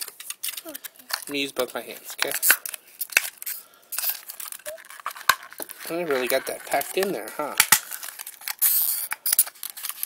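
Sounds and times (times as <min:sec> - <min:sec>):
plastic packaging crackling: 0:00.0 - 0:10.0.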